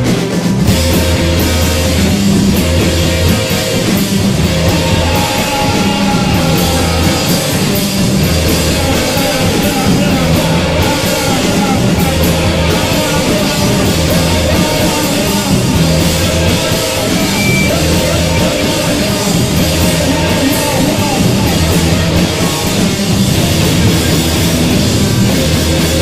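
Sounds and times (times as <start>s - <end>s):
drum kit: 0.0s - 26.0s
electric guitar: 0.0s - 26.0s
rock band playing live: 0.0s - 26.0s.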